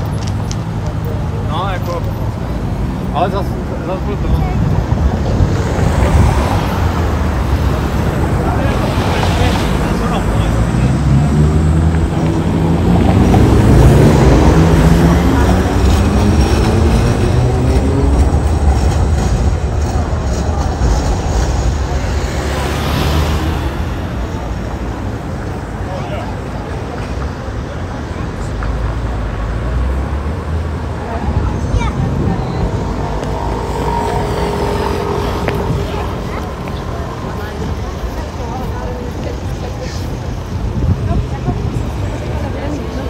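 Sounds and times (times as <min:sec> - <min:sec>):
city street traffic: 0:00.0 - 0:43.0.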